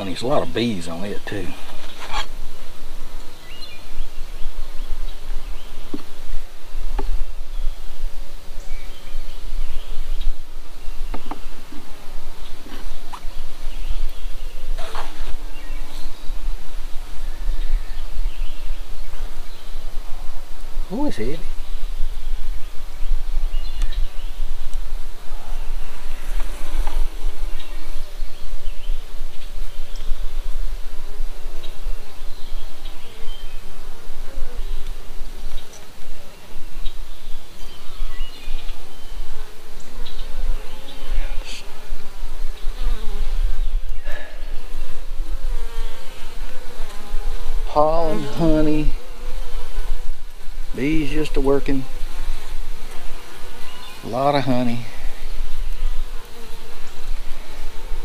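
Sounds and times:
honeybees buzzing: 0:00.0 - 0:58.0.

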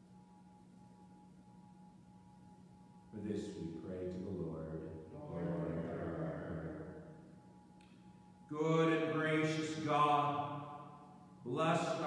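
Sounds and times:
man chanting long held notes: 0:03.2 - 0:07.1.

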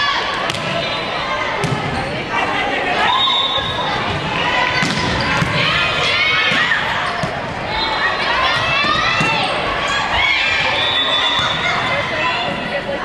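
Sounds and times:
echoing hubbub of voices: 0:00.0 - 0:13.0.

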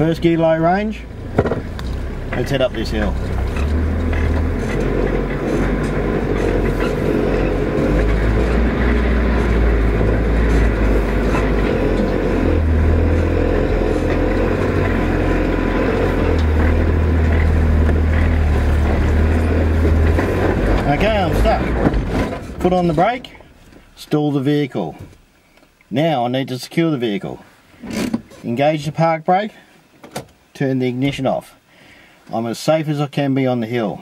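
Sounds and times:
engine pulling uphill: 0:00.0 - 0:25.3.

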